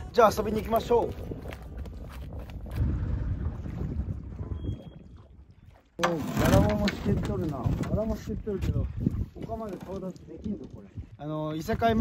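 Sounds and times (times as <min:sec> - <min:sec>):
wind buffeting microphone: 0:00.0 - 0:05.8, 0:06.4 - 0:12.0.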